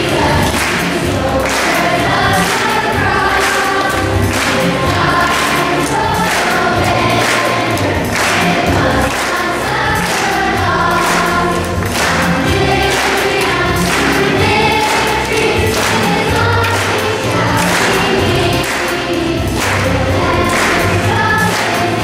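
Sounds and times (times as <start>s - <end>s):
children's choir singing: 0.0s - 22.0s
instrumental accompaniment with beat: 0.0s - 22.0s.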